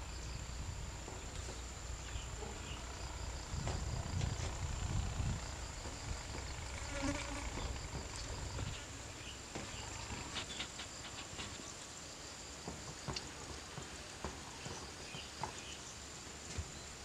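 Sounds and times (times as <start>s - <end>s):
low rumble: 0.0s - 6.8s
insect buzz: 0.0s - 17.0s.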